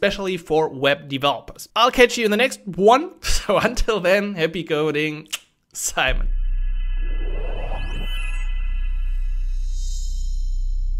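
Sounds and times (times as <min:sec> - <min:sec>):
deep electronic drone: 0:06.1 - 0:10.9
thin rising sweep: 0:06.1 - 0:10.9
whoosh: 0:06.1 - 0:10.9.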